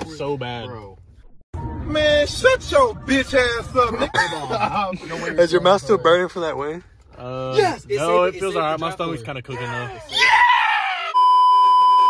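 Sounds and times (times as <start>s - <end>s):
high test-tone beep: 11.2s - 12.0s.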